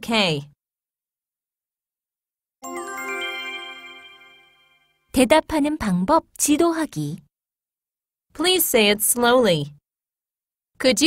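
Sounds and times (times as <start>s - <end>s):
bell-like chime jingle: 2.6s - 5.1s.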